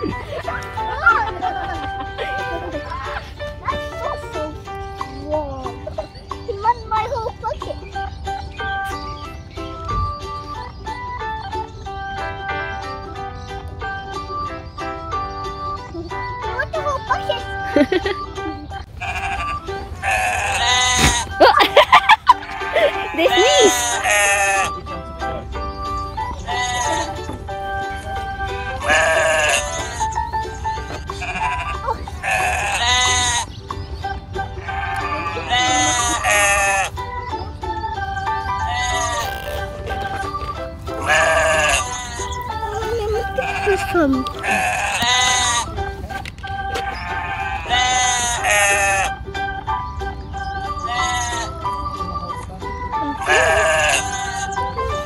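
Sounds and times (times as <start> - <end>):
background music: 0.0 - 55.0
sheep bleating: 19.0 - 21.4, 22.3 - 24.8, 26.5 - 27.2, 28.6 - 30.2, 31.1 - 33.5, 34.6 - 37.0, 38.6 - 39.6, 41.0 - 42.4, 43.3 - 45.8, 46.7 - 49.2, 50.9 - 51.5, 53.2 - 54.6.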